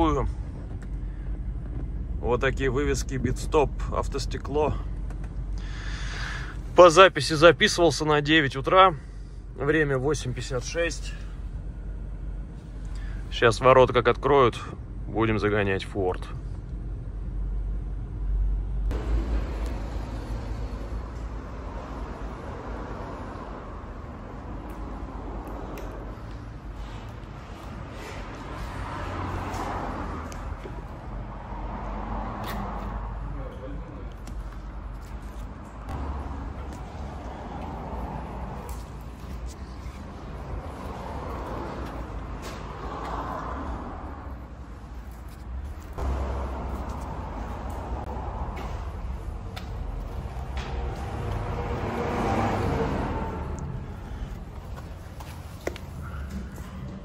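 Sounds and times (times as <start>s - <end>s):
steady low rumble: 0.0s - 29.4s, 33.0s - 52.1s.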